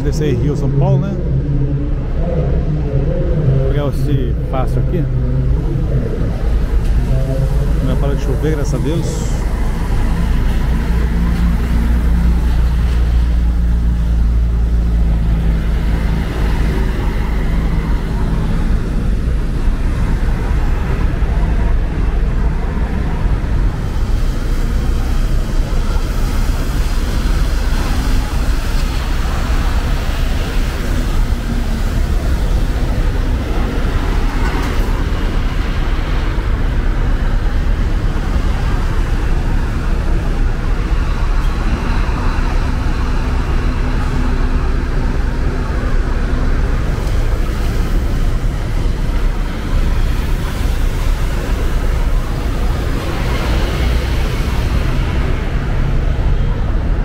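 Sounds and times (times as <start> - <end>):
coach diesel engines rumbling: 0.0 - 57.0.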